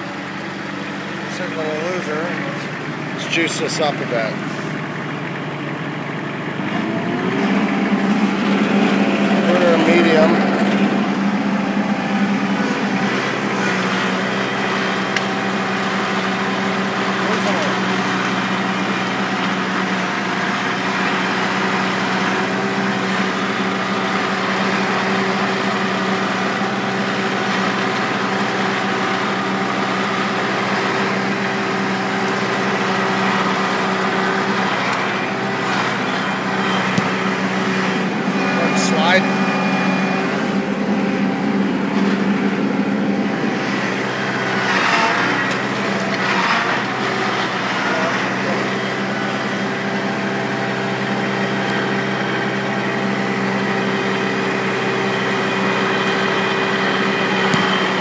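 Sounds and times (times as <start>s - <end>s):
tractor diesel engine revving: 0.0s - 58.0s
wavering whine: 7.0s - 15.6s, 34.1s - 45.6s.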